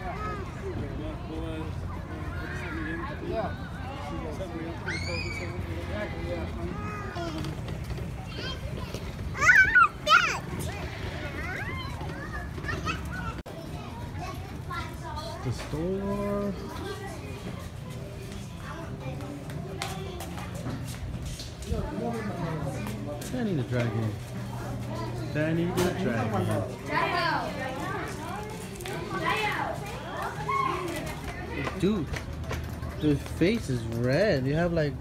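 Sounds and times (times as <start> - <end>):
children chattering and calling out: 0.0 - 35.0.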